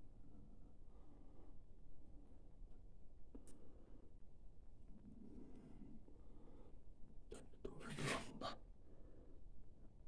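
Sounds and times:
person whispering: 7.3 - 8.7.

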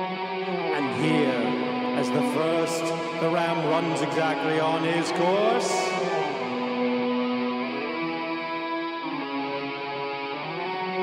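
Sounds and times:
live band slow instrumental: 0.0 - 11.0.

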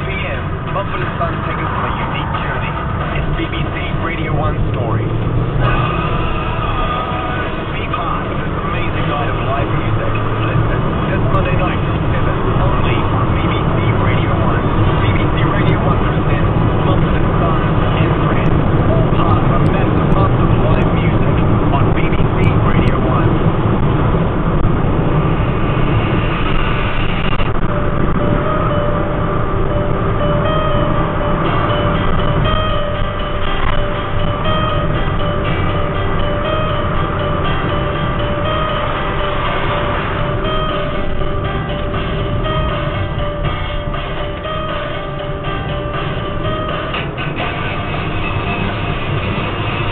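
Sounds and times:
car engine and tyre rumble: 0.0 - 49.9
car radio talk and music: 0.0 - 49.9.

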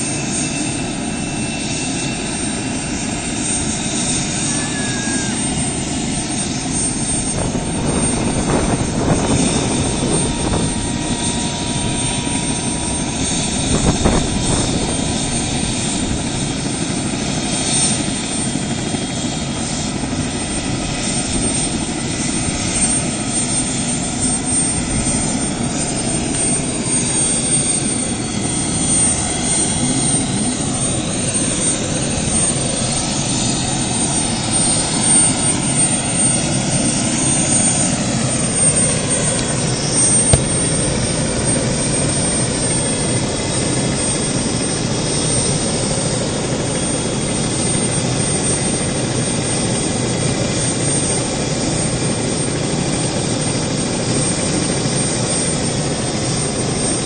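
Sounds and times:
helicopter engine and rotor: 0.0 - 57.0.

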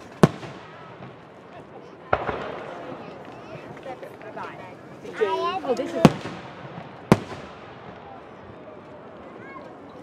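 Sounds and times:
fireworks exploding: 0.0 - 8.8
spectators chattering: 0.0 - 10.0.

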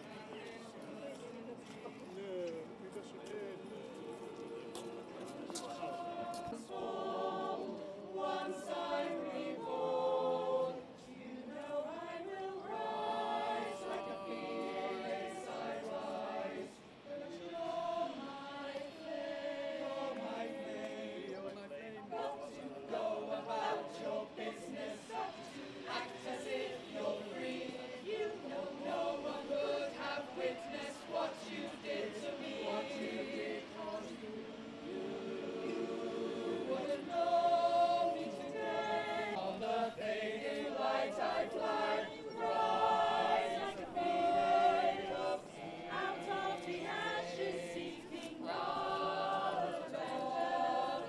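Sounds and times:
choir singing: 0.0 - 51.0.

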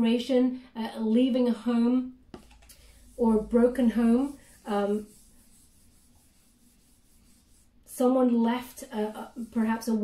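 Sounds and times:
person speaking: 2.4 - 10.0.

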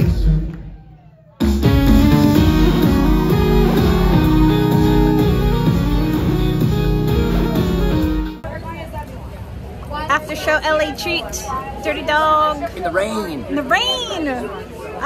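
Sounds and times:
live synth-pop band: 1.4 - 8.4.

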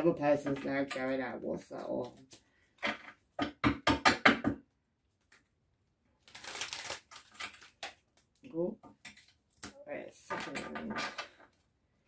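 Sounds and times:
sharp knocks on hard surface: 3.4 - 4.6
cards rustling: 6.2 - 8.4.

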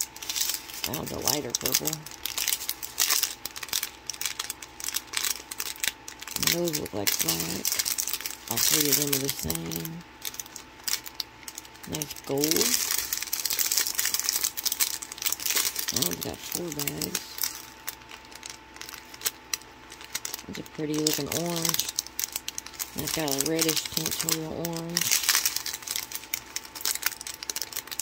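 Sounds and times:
plastic bags crinkling: 0.0 - 28.0.

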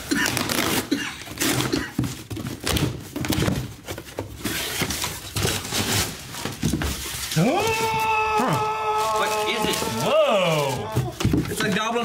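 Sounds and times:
plastic bag rustling: 0.0 - 12.0
cardboard box rustling: 1.4 - 12.0
high drawn-out cry: 7.4 - 11.1.

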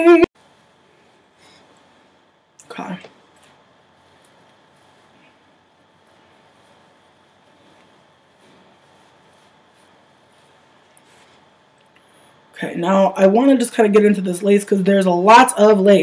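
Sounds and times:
wig hair rustling: 3.2 - 12.4.

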